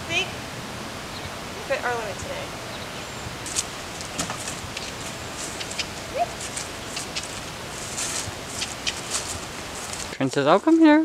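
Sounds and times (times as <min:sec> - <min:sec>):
outdoor background hiss: 0:00.0 - 0:11.0
soft rustles and clicks: 0:03.5 - 0:10.9.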